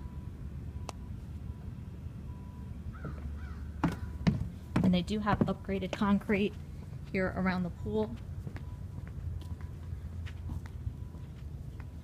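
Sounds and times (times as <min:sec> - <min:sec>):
low outdoor rumble: 0:00.0 - 0:12.0
crow cawing: 0:02.9 - 0:04.3.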